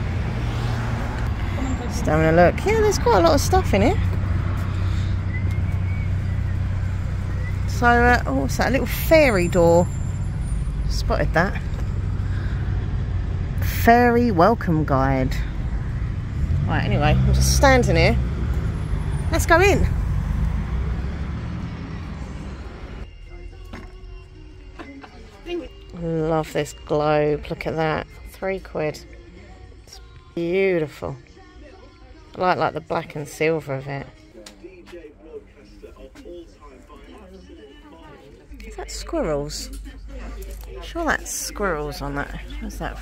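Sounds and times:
road traffic engine rumble: 0.0s - 30.3s, 34.3s - 43.0s.

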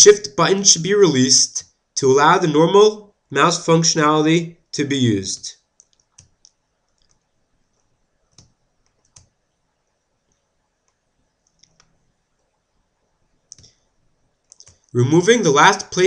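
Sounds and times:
computer mouse clicks: 5.8s - 9.4s, 10.3s - 12.5s, 13.5s - 13.8s, 14.4s - 14.9s.

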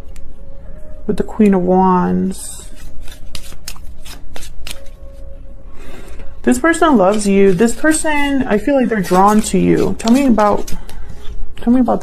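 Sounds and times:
cards being shuffled: 2.6s - 5.2s, 6.7s - 11.4s.

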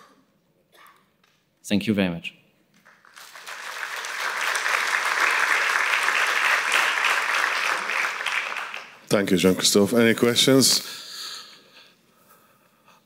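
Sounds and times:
audience applauding: 2.8s - 9.2s.

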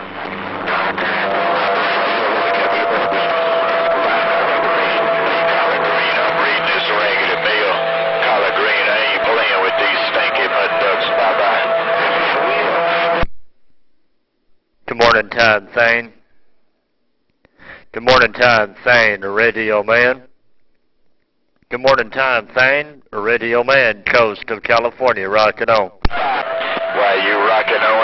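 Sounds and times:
garbled radio transmission: 0.0s - 13.3s, 26.1s - 28.0s.

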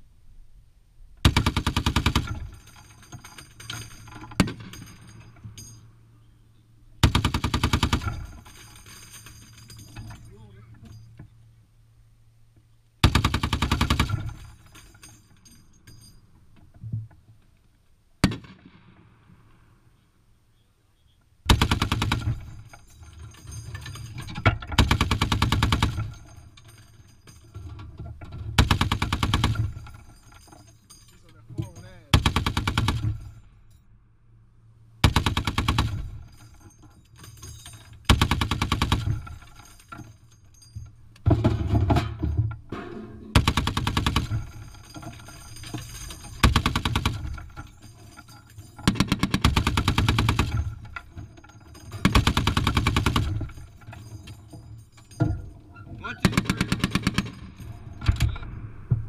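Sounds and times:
heavy machine gun firing: 1.2s - 2.8s, 7.0s - 8.7s, 13.0s - 14.7s, 21.5s - 22.7s, 24.8s - 26.4s, 28.6s - 30.0s, 32.1s - 33.4s, 35.0s - 36.4s, 38.1s - 39.6s, 43.3s - 47.7s, 48.8s - 50.9s, 52.0s - 53.8s, 56.1s - 58.6s.

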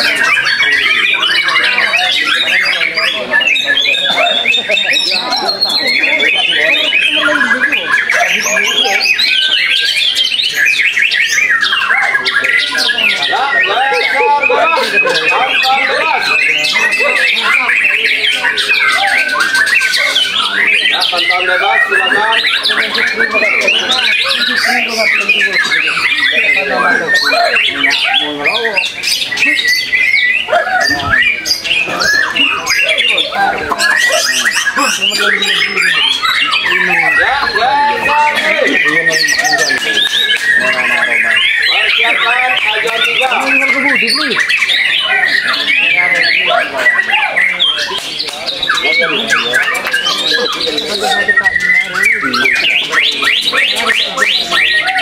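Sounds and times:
other birds singing: 0.0s - 55.0s
songbird whistling and chattering: 0.0s - 55.0s.

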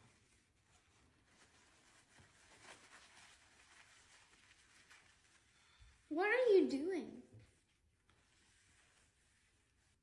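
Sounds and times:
paper towel wiping countertop: 0.0s - 10.0s.

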